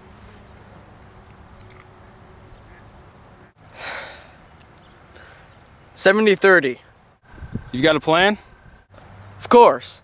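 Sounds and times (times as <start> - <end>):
low outdoor background rumble: 0.0 - 6.0
sharp breath through the nose: 3.7 - 4.4, 5.1 - 5.5.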